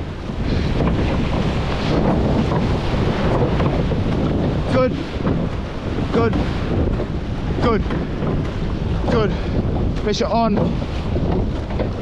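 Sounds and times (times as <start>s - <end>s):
sea water rushing and splashing: 0.0s - 12.0s
waves breaking: 0.0s - 12.0s
wind buffeting microphone: 0.0s - 12.0s.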